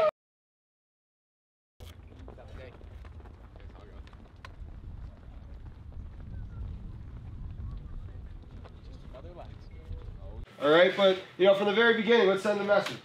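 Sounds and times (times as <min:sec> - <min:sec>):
wind rumbling on microphone: 0:01.9 - 0:10.5.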